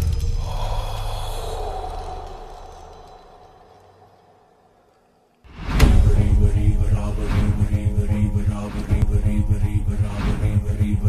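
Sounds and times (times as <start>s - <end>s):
low rumble with airy hiss: 0.0s - 11.0s.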